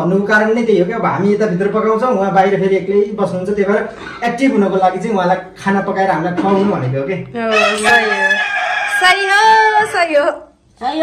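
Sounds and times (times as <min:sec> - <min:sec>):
rooster crowing: 0:07.5 - 0:09.9.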